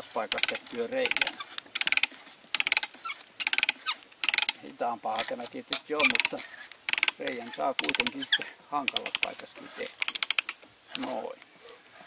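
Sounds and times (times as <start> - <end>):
ratchet pawl clicking: 0.0 - 8.3, 8.9 - 11.1.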